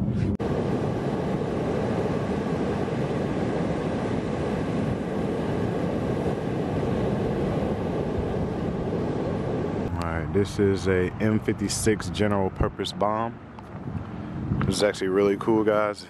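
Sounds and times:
wind buffeting microphone: 0:00.0 - 0:16.0
surf breaking on beach: 0:00.4 - 0:11.5.

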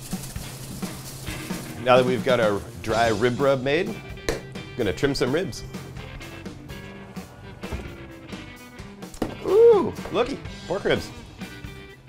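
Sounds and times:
dry rub rattling in glass shaker: 0:00.0 - 0:01.8
quiet background music: 0:00.0 - 0:12.0.

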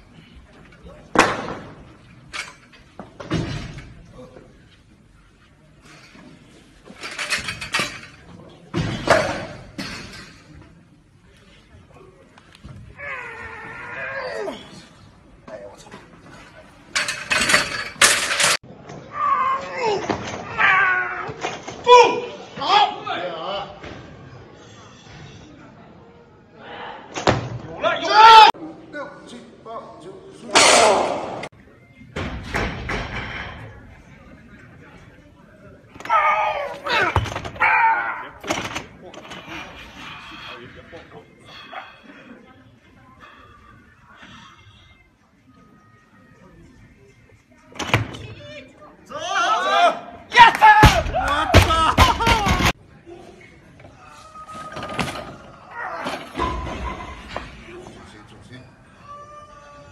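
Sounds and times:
voices in a large hall: 0:00.0 - 0:59.9.

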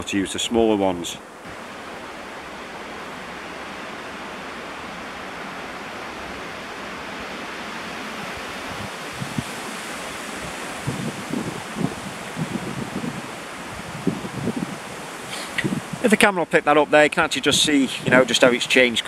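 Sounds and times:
wind hissing: 0:00.1 - 0:16.4, 0:17.3 - 0:19.0.

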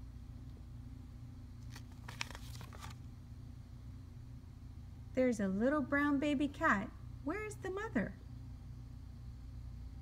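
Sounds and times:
steady low hum: 0:00.0 - 0:10.0
paper page turning: 0:01.6 - 0:03.1.

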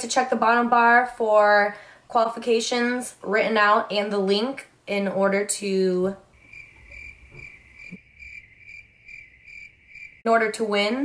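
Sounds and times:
crickets chirping: 0:06.4 - 0:10.3.

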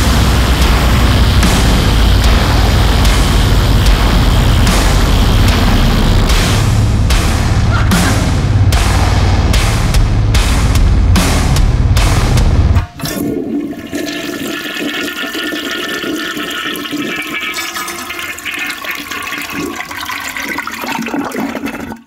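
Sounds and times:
rock band playing loudly: 0:00.0 - 0:12.8
toilet flush water rushing: 0:12.9 - 0:22.0.

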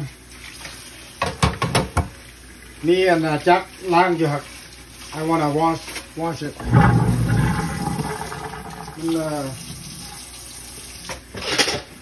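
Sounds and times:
cookware clattering in metal sink: 0:11.3 - 0:12.0.

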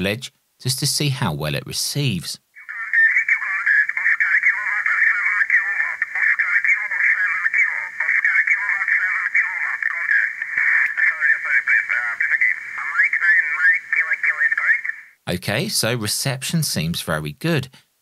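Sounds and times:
tinny radio voices: 0:02.6 - 0:15.2
radio band hiss: 0:02.6 - 0:15.6.

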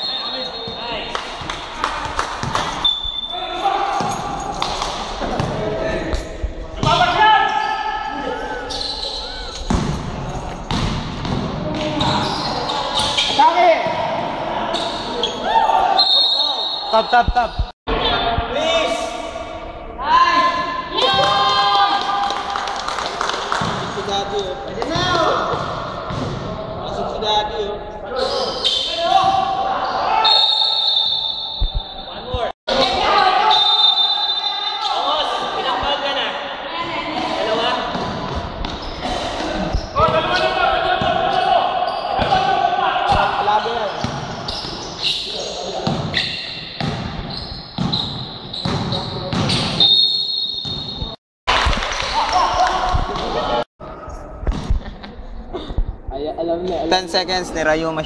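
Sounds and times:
basketball bouncing on court: 0:09.6 - 0:12.3, 0:24.8 - 0:26.5, 0:44.0 - 0:44.8, 0:45.8 - 0:46.2, 0:46.8 - 0:49.8, 0:50.6 - 0:51.2
players shouting: 0:20.0 - 0:22.6, 0:39.0 - 0:44.8.

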